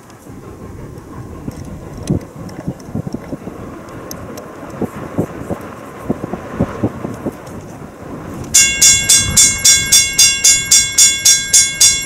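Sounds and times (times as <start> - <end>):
railroad crossing bell ringing: 8.5 - 12.0.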